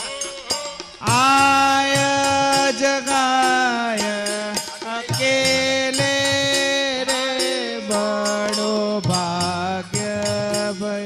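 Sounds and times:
harmonium chords: 0.0 - 11.0
tabla and percussion beat: 0.0 - 11.0.

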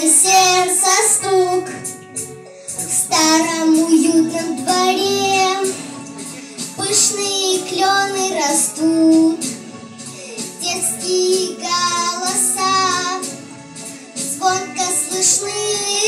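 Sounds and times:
children singing: 6.8 - 9.6, 10.6 - 13.4.

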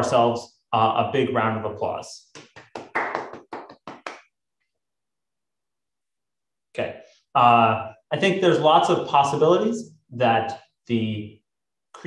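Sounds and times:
hand clapping: 2.3 - 4.4.

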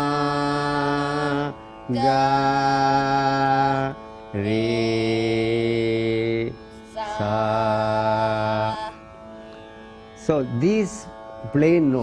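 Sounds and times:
voices singing scale notes: 0.0 - 9.3, 10.2 - 12.0
faint steady drone: 0.0 - 12.0.

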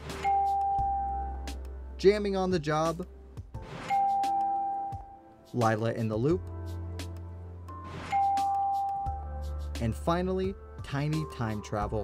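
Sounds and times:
background music with low bass: 0.0 - 12.0
bell-like chime: 0.2 - 1.3, 3.8 - 5.2, 8.0 - 9.3.

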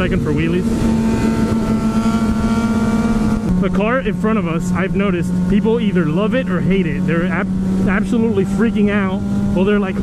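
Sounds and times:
motorcycle engines droning: 0.0 - 10.0
wind and road noise: 0.0 - 10.0.

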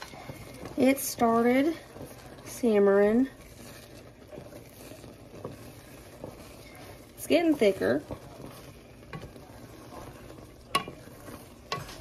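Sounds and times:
thick food bubbling in a pot: 0.0 - 12.0
wooden spoon stirring: 0.0 - 12.0.

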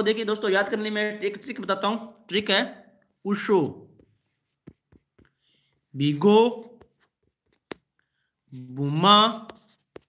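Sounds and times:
stylus tapping on glass screen: 6.7 - 8.0.

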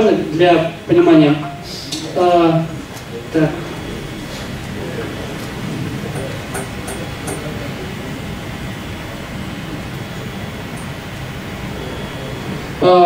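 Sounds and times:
low rumble of room noise: 0.0 - 13.0.

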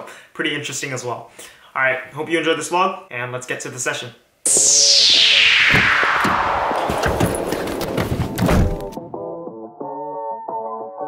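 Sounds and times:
whoosh effect: 4.5 - 8.5.

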